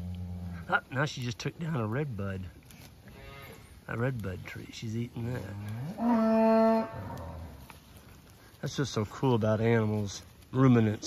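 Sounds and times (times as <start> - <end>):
cow mooing: 5.6 - 7.6.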